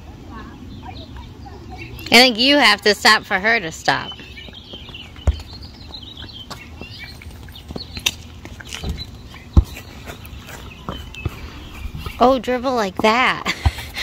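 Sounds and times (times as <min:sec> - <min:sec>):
birds chirping faintly: 0:00.0 - 0:14.0
outdoor background noise: 0:00.0 - 0:14.0.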